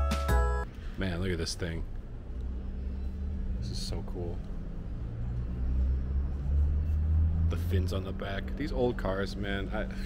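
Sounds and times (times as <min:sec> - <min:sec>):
low steady rumble: 0:00.6 - 0:10.0.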